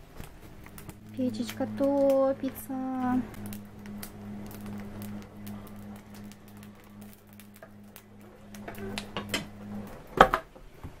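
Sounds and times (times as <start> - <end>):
firewood crackling and snapping: 0.0 - 10.2
low steady hum: 0.0 - 11.0.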